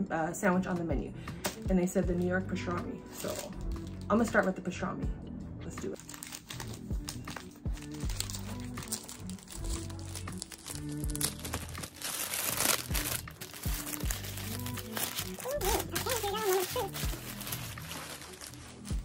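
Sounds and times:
background music with steady beat: 0.0s - 19.0s
paper wrapping crinkling: 3.1s - 4.0s, 6.0s - 19.0s.

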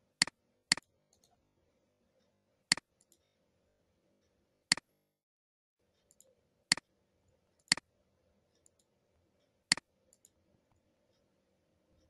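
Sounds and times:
computer mouse clicks: 0.2s - 1.4s, 2.7s - 3.3s, 6.1s - 6.9s, 7.6s - 7.9s, 8.6s - 8.9s, 9.7s - 10.8s.

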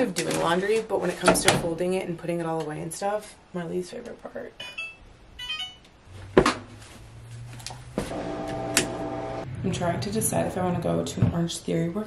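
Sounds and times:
washing machine humming: 7.9s - 9.5s.

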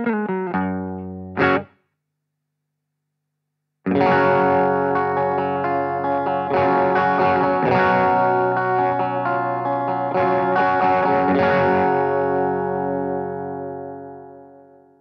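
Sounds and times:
electric guitar chords ringing: 0.0s - 1.7s, 3.9s - 15.0s.

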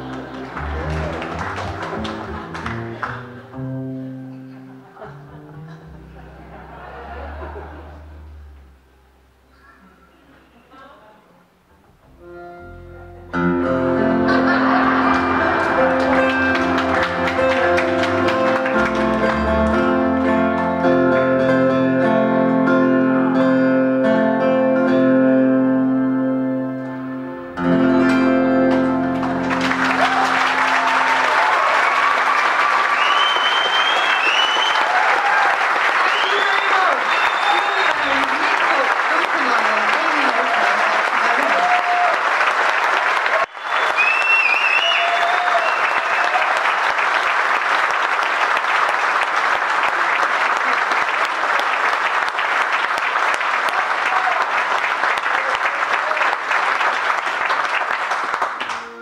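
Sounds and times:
audience applauding: 0.0s - 3.7s, 13.9s - 21.6s, 28.0s - 59.0s
whoops and cheers: 29.8s - 38.3s, 40.3s - 42.3s, 43.2s - 47.0s, 53.7s - 54.7s.

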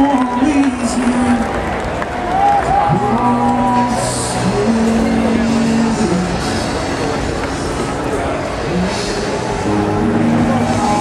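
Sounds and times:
electric guitar: 0.0s - 11.0s
person singing: 2.9s - 7.3s, 8.6s - 11.0s.

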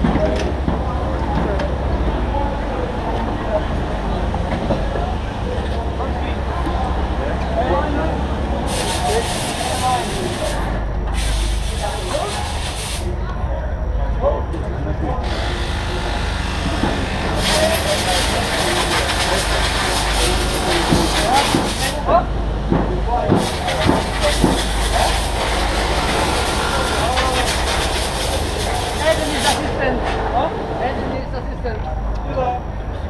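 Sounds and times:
indistinct voices: 0.0s - 33.0s
steady low hum: 0.0s - 33.0s
compressed air hissing: 8.6s - 13.1s, 15.2s - 22.0s
steady low rumble: 10.2s - 20.8s.

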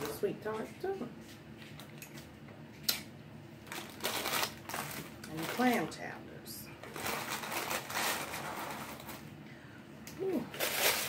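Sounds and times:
paper wrapper crinkling: 3.6s - 6.0s, 6.8s - 9.3s, 10.5s - 11.0s
person humming mm: 10.1s - 10.6s.

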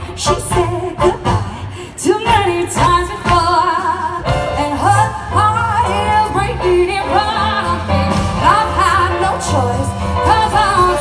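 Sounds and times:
drums: 0.0s - 11.0s
piano: 0.0s - 11.0s
woman singing with vibrato: 0.0s - 11.0s.

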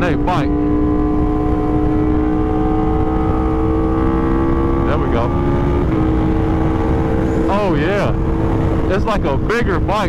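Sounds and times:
motorcycle engine accelerating: 0.0s - 10.0s.

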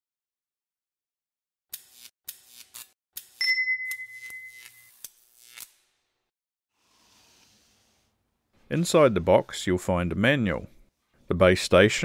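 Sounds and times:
bright ding: 3.4s - 4.9s.

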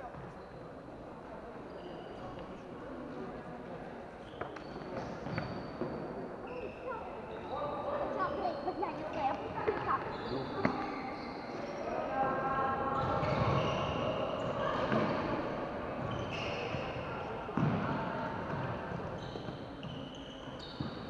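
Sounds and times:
shoe squeaks: 1.7s - 2.5s, 4.2s - 11.9s, 13.0s - 17.4s, 19.0s - 21.0s.

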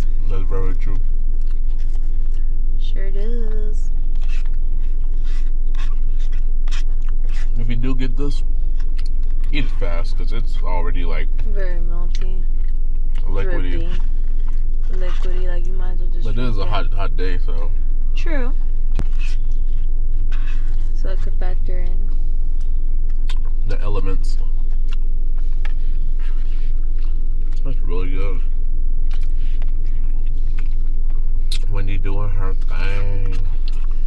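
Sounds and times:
low rumble in a car: 0.0s - 34.0s.

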